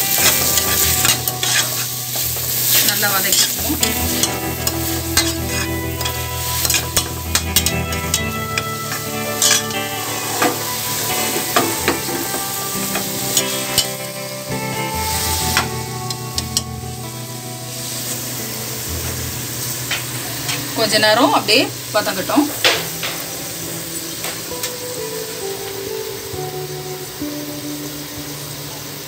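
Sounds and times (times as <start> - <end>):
onions and spices sizzling in oil: 0.0 - 29.0
spatula scraping and clicking on pot: 0.2 - 1.9.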